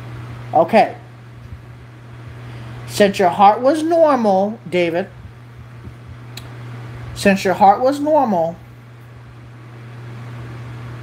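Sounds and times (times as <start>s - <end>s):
steady low hum with hiss: 0.0s - 11.0s.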